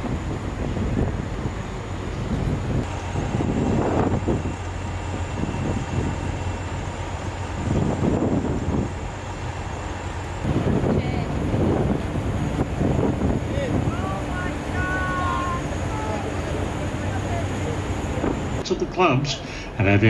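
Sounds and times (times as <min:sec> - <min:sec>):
diesel trucks idling: 0:01.4 - 0:18.6.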